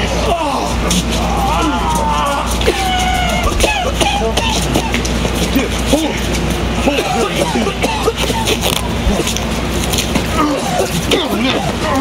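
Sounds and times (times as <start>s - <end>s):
men shouting and grunting: 0.0s - 9.4s, 10.1s - 12.0s.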